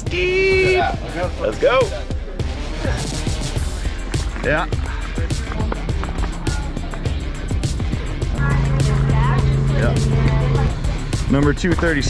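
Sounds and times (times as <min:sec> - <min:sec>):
background music with steady beat: 0:00.0 - 0:12.0
held low note: 0:08.0 - 0:12.0.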